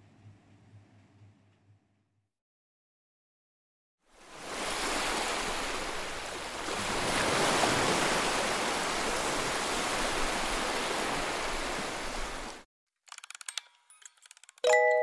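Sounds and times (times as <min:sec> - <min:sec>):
ocean waves washing onto beach: 0:04.1 - 0:12.6.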